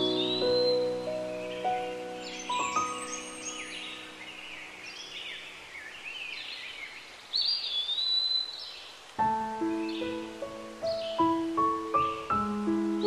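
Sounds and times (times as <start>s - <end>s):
bird whistled call: 0.0s - 4.5s
soft background music: 0.0s - 5.6s, 9.2s - 13.0s
birds chirping: 0.0s - 13.0s.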